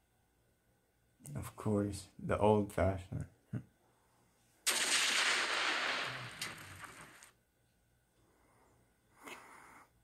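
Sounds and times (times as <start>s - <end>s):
grenade explosion: 4.6s - 7.3s
short cracks: 4.6s - 7.4s.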